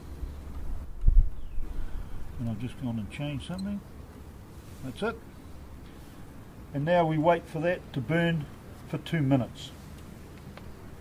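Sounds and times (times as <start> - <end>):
wind buffeting microphone: 0.8 - 2.3.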